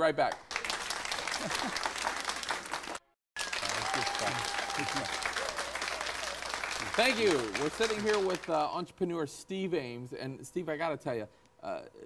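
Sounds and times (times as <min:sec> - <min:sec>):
applause: 0:00.2 - 0:08.7.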